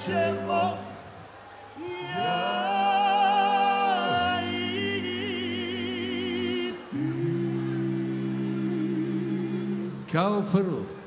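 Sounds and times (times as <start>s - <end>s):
voices holding a chord: 0.0s - 11.0s.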